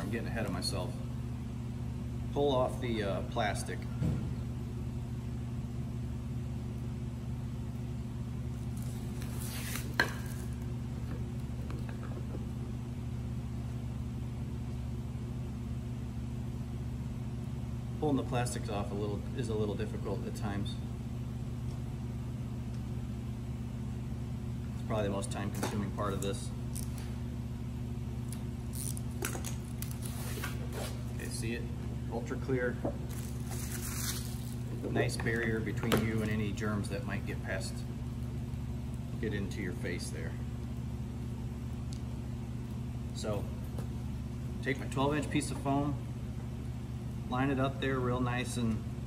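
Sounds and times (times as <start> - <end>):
steady low hum: 0.0 - 49.0
plastic film peeling crackles: 8.7 - 10.6, 28.3 - 30.6, 33.1 - 34.7
plastic film crackling rustle: 33.1 - 34.7.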